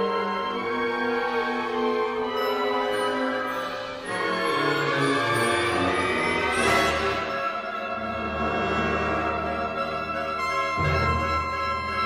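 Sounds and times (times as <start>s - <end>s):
wind band playing: 0.0s - 12.0s.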